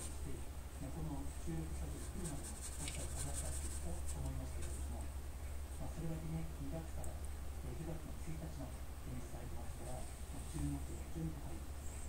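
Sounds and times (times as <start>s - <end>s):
cat scratching string toy: 0.0s - 0.3s, 1.6s - 5.0s
steady low hum: 0.0s - 12.0s.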